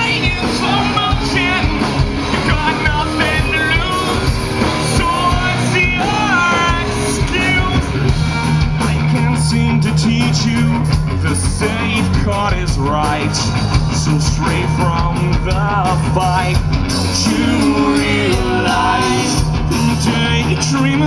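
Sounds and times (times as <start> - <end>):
bass guitar: 0.0 - 21.0
busy drumming: 0.0 - 21.0
distorted electric guitars: 0.0 - 21.0.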